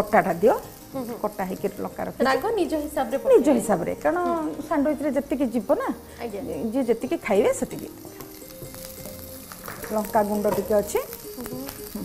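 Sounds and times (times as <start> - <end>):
garlic and chillies sizzling in oil: 0.0 - 12.0
soft background music: 0.0 - 12.0.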